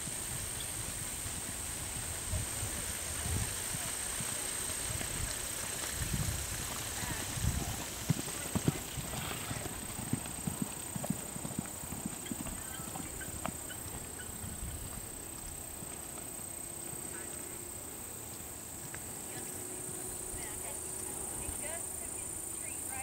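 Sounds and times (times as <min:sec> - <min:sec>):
horse hoofbeats on sand: 0:00.0 - 0:17.4.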